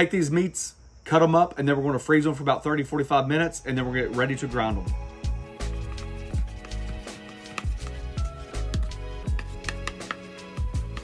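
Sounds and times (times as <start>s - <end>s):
music with beat and bass: 4.7s - 11.0s.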